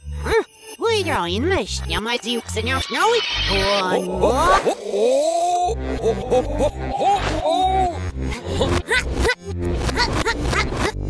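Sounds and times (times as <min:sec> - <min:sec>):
reversed cartoon music with bass: 0:01.2 - 0:11.0
squeaky gliding vocal sounds: 0:02.2 - 0:07.8.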